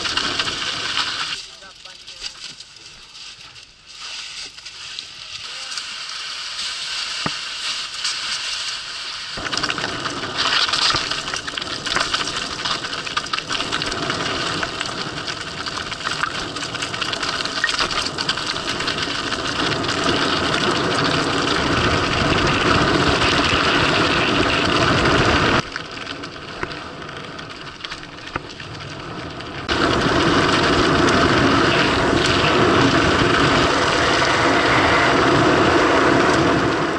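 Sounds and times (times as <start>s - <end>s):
bike rattling: 0.0s - 36.9s
tyres crunching on gravel: 0.0s - 36.9s
stones clattering: 9.4s - 20.6s
wind on microphone: 18.1s - 25.6s, 29.1s - 36.9s.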